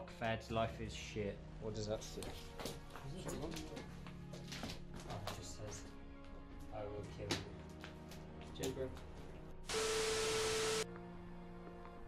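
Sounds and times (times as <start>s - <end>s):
static hiss burst: 9.7s - 10.8s
steady tone: 9.7s - 10.8s.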